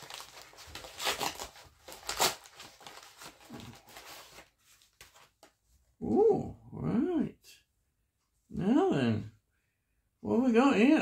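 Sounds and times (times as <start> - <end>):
packaging tearing and crinkling: 0.0 - 5.3.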